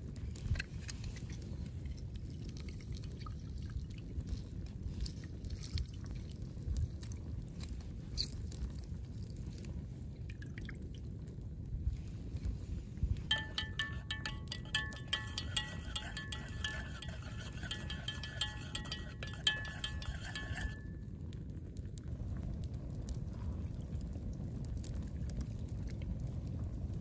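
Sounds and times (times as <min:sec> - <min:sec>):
pitcher ringing: 0:13.3 - 0:21.0
spoon stirring in metal pitcher: 0:13.3 - 0:21.0.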